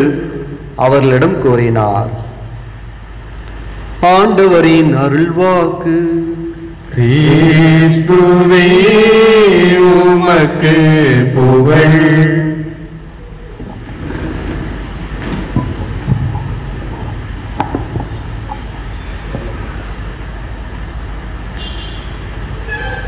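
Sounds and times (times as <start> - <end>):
person chanting: 4.1 - 12.9
microphone handling knocks: 13.6 - 18.6.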